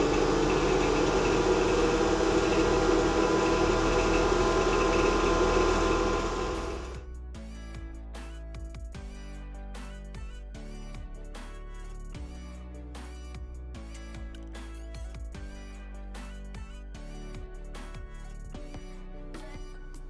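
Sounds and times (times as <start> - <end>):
water pumps humming: 0.0 - 7.0
background music: 0.0 - 20.0.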